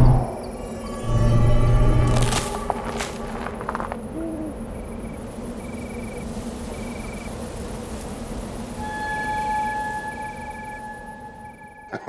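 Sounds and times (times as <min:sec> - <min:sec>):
steady electronic tone: 0:00.0 - 0:02.7, 0:08.7 - 0:12.0
steady low rumble: 0:00.0 - 0:08.8
crickets chirping: 0:00.0 - 0:12.0.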